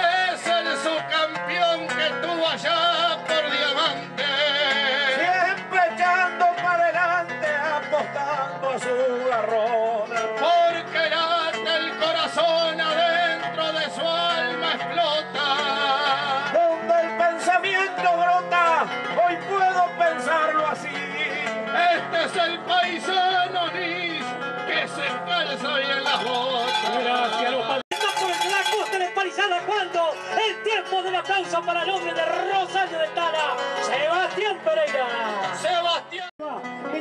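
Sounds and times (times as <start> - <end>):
folk singing: 0.0 - 36.2
guitar accompaniment: 0.0 - 37.0.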